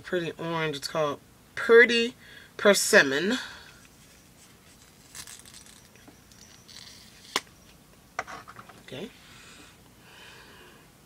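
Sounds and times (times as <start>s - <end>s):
faint plastic rustling: 3.7s - 9.2s.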